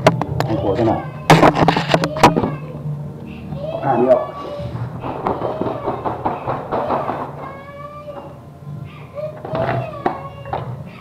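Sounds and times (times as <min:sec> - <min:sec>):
woven mat rustling and rattling: 0:04.4 - 0:08.3.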